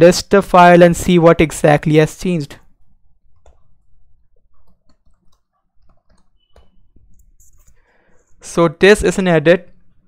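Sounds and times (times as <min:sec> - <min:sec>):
keyboard keys clicking: 0:03.3 - 0:07.8.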